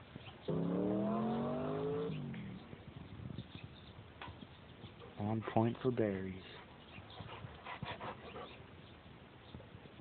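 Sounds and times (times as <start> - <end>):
engine revving: 0.5 - 2.5.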